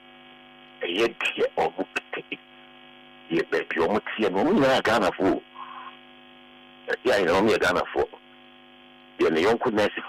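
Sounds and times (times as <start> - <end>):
electrical mains hum: 0.0 - 10.0
person speaking: 0.8 - 2.4.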